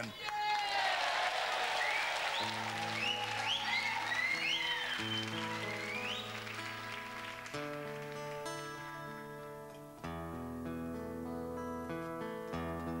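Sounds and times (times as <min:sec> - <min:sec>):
audience applauding and cheering: 0:00.0 - 0:09.1
acoustic guitar playing: 0:02.4 - 0:13.0.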